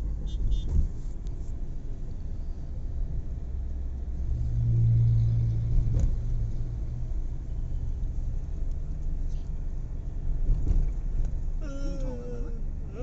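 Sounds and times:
vehicle engine and road noise: 0.0s - 13.0s.

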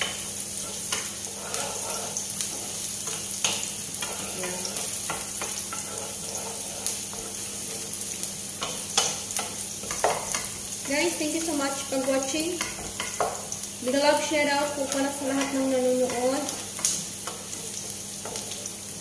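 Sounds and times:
wooden spoon scraping pan: 0.0s - 16.6s
onions sizzling in oil: 0.0s - 19.0s.

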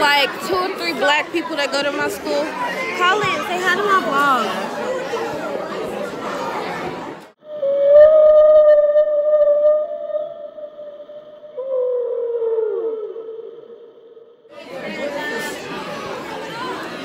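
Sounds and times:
chatter: 0.0s - 7.4s, 14.5s - 17.0s
long wavering censor tone: 7.4s - 14.5s.

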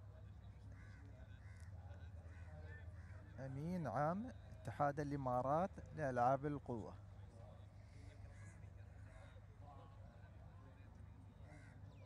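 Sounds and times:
faint background chatter: 0.0s - 12.0s.

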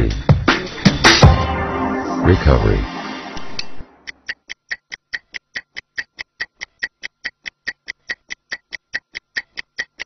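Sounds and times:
music: 0.0s - 4.2s
stopwatch ticking: 4.0s - 10.0s.

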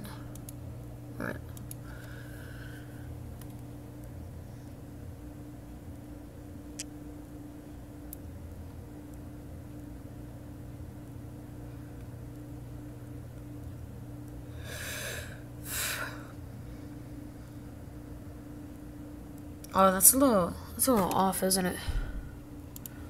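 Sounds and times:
computer humming: 0.0s - 23.0s
faint sharp clicks: 22.8s - 23.0s.

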